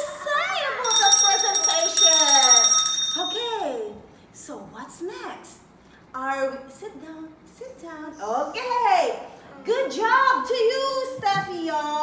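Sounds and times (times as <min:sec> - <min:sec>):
small handbell ringing: 0:00.8 - 0:03.8.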